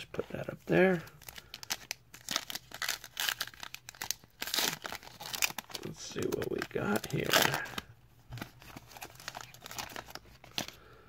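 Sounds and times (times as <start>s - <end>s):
foil wrapper tearing and crinkling: 0.8s - 10.8s.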